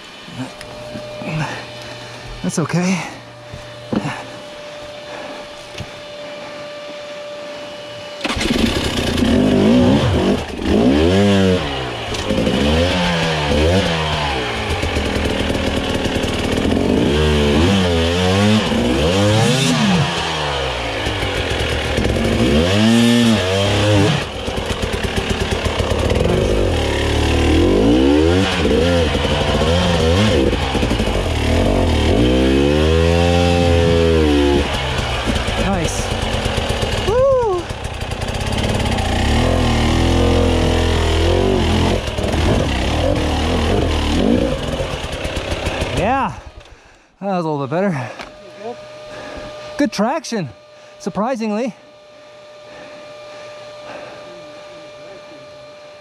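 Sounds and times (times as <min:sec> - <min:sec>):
motorcycle engine revving: 0:00.0 - 0:07.4, 0:08.0 - 0:46.9, 0:47.9 - 0:56.0.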